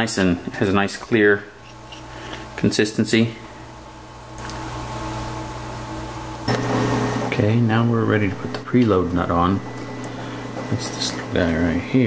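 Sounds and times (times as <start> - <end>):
mechanical hum with low tones: 0.0 - 12.0.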